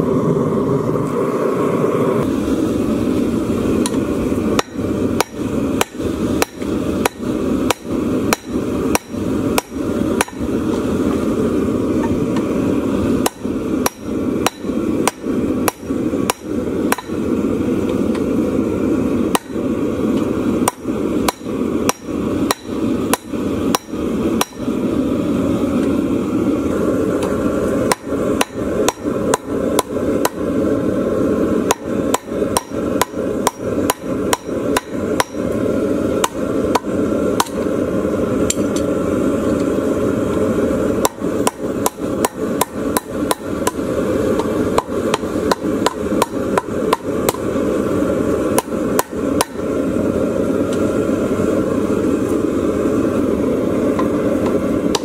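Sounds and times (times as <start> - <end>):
low rushing noise: 0.0 - 55.0
hammer striking hot steel: 3.7 - 18.4, 19.0 - 24.8, 27.1 - 30.6, 31.6 - 39.8, 40.9 - 47.7, 48.3 - 49.8, 53.9 - 55.0.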